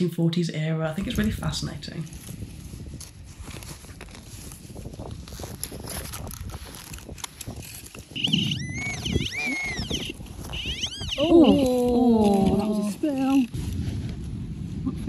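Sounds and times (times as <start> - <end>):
hand digger scraping soil: 2.1 - 14.3
high warbling tone: 8.2 - 11.7.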